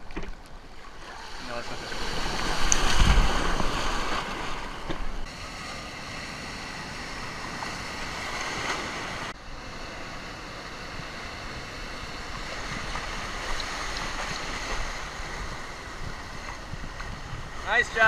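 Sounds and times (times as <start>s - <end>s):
ocean surf breaking: 0.6s - 18.0s.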